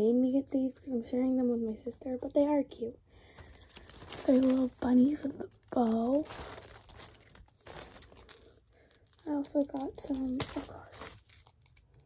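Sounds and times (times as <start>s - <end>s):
packaging crinkling and rustling: 3.2s - 12.0s.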